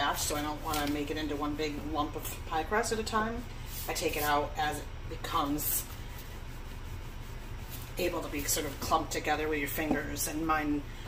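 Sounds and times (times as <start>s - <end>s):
low background hum: 0.0s - 11.0s
rolling pin rubbing over dough: 0.2s - 10.7s.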